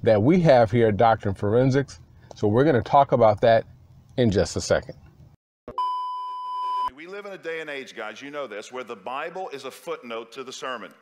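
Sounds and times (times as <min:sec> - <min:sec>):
high electronic beep: 0:05.7 - 0:06.9.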